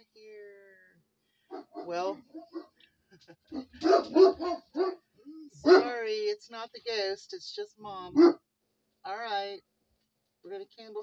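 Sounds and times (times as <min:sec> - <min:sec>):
dog barking: 0:01.5 - 0:02.8, 0:03.5 - 0:06.0, 0:08.1 - 0:08.4.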